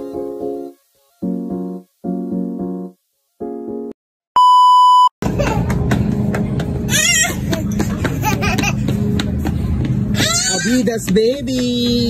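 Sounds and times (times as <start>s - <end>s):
electronic beep: 4.4s - 5.1s
supermarket hum and noise: 5.2s - 12.0s.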